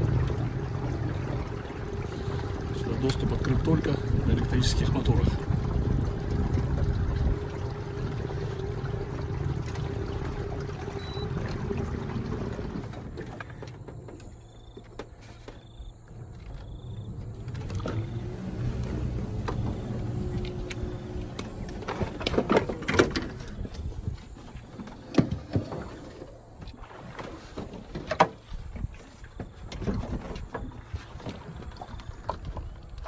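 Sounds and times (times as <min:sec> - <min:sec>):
motor hum: 0:00.0 - 0:27.2
boat motor rumble: 0:00.0 - 0:33.0
water: 0:00.0 - 0:33.0
wind: 0:00.0 - 0:33.0.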